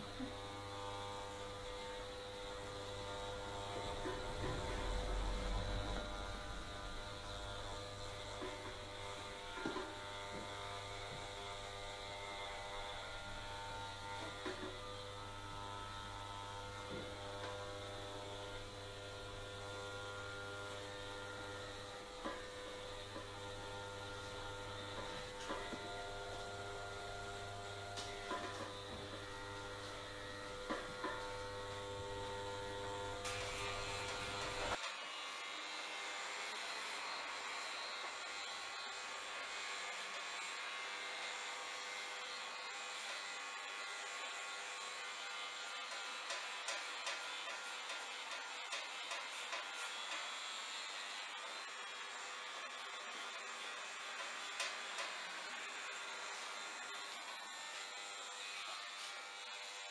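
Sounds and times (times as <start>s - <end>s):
electric hair clippers buzzing: 0.0s - 59.9s.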